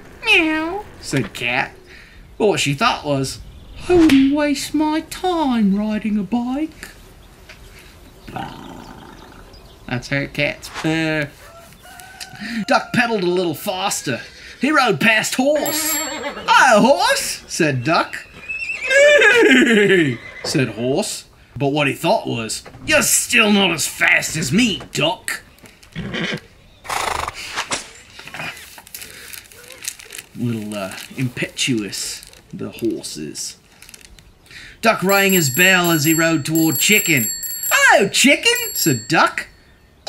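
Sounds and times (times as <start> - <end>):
raspy cat-like growl: 8.3 - 9.5
man laughing: 19.0 - 20.2
soft handling noises: 27.7 - 34.4.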